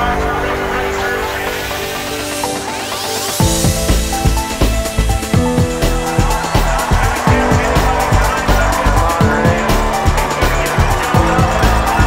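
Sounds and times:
electronic music with bass drums: 0:00.0 - 0:12.0.

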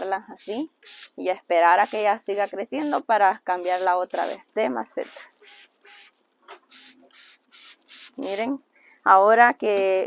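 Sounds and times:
spray bottle hissing squirts: 0:06.7 - 0:08.4.

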